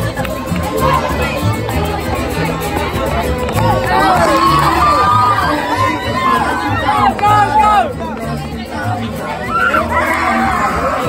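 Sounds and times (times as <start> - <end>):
loud crowd chatter: 0.0 - 11.0
mariachi band playing: 0.0 - 11.0
plucked bass line: 0.0 - 11.0.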